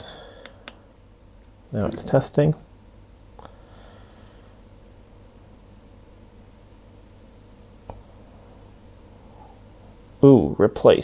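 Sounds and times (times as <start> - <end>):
low steady hiss and hum: 0.0 - 11.0.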